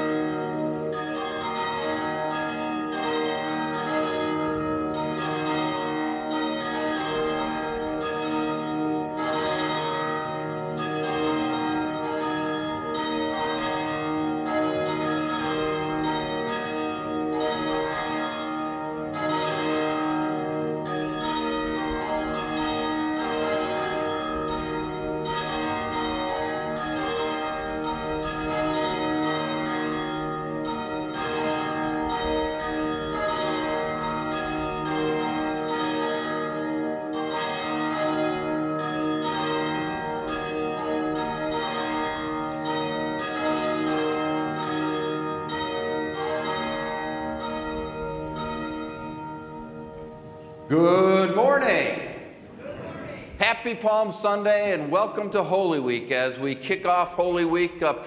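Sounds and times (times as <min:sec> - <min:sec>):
church bells pealing: 0:00.0 - 0:52.4, 0:53.4 - 0:58.0.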